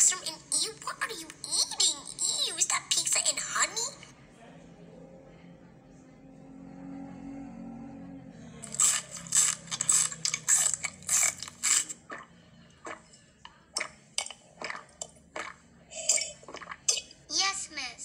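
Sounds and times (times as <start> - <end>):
quiet low hum: 0.0 - 17.3
crunchy biting and chewing: 8.6 - 12.3.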